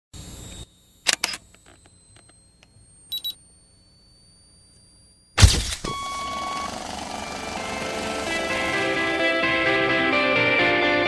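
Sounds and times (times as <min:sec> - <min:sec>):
shutter-like clicks: 0:00.5 - 0:02.4
high double beep: 0:05.8 - 0:07.5.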